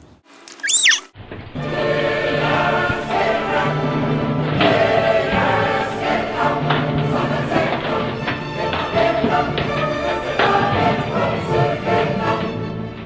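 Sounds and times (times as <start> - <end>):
choir singing sustained chords: 1.5 - 13.0.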